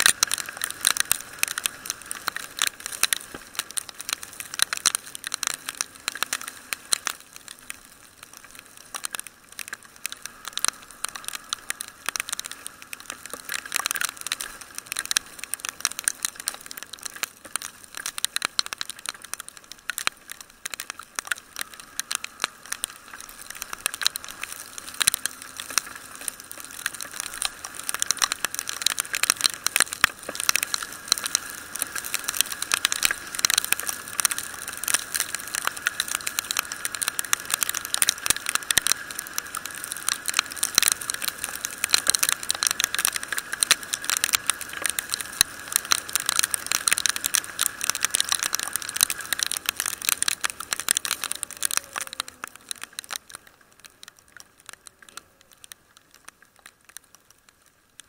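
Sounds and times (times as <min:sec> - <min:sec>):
raindrops striking camera housing: 0:00.0 - 0:58.0.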